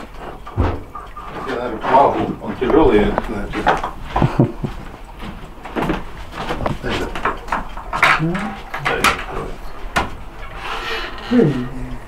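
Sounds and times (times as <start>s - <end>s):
indistinct voices: 10.6s - 12.0s.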